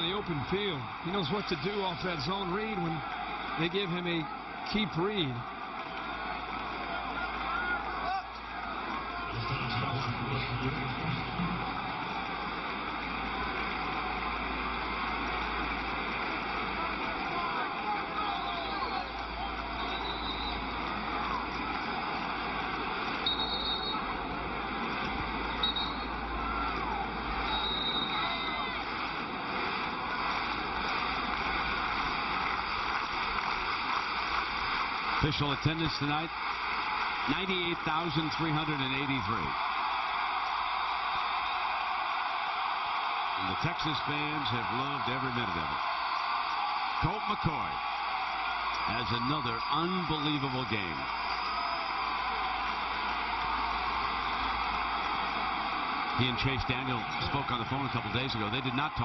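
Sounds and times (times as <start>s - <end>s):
stadium crowd cheering and chatter: 0.0s - 59.0s
short high whistle-like tones: 19.8s - 20.6s, 23.2s - 24.1s, 25.6s - 26.2s, 27.4s - 28.7s.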